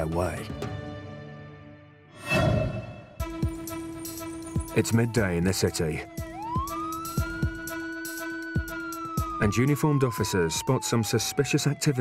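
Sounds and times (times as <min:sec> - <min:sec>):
background music with drum beat: 0:03.2 - 0:04.8, 0:06.1 - 0:09.5
siren wailing: 0:03.6 - 0:12.0.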